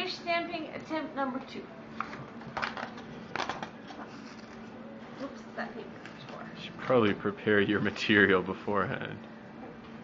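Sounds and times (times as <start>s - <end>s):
paper sheets rustling: 2.0s - 5.3s.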